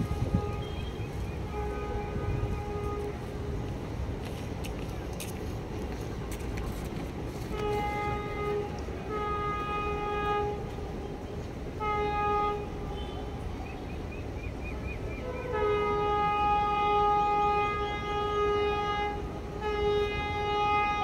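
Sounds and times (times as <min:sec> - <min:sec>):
train horn blasts: 0:00.0 - 0:03.9, 0:07.4 - 0:13.5, 0:15.1 - 0:21.0.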